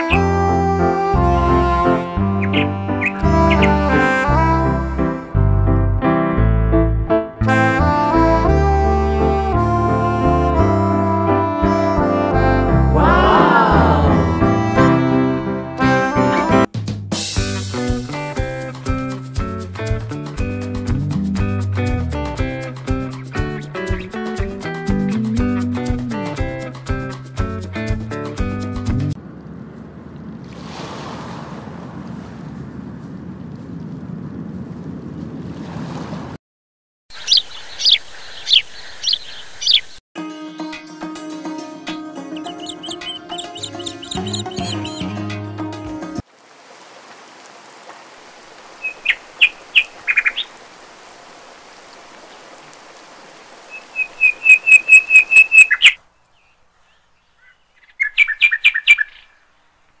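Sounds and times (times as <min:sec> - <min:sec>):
bird chirps sweeping downward: 0:37.1 - 0:40.0, 0:42.4 - 0:45.1, 0:53.7 - 0:59.5.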